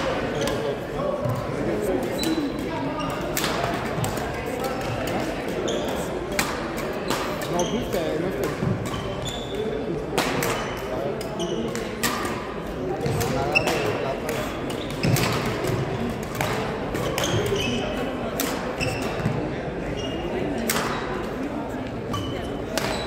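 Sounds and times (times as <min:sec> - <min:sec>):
shoes squeaking on gym floor: 0:00.2 - 0:00.8, 0:01.9 - 0:03.4, 0:05.6 - 0:06.1, 0:07.4 - 0:08.2, 0:08.9 - 0:09.8, 0:13.3 - 0:15.3, 0:17.0 - 0:18.0, 0:18.7 - 0:20.4, 0:22.0 - 0:23.0
rackets hitting shuttlecock: 0:01.2 - 0:07.7, 0:08.3 - 0:09.2, 0:10.1 - 0:17.7, 0:20.6 - 0:21.1, 0:22.7 - 0:23.0.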